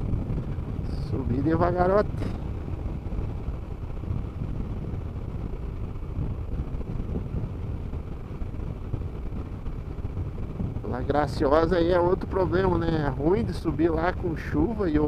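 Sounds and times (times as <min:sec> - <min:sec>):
motorcycle engine rumble: 0:00.0 - 0:15.0
wind noise: 0:00.0 - 0:15.0.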